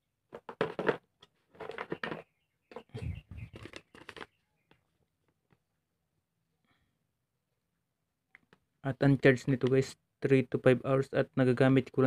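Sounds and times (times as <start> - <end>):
paper rustling and crinkling: 3.4 - 4.4.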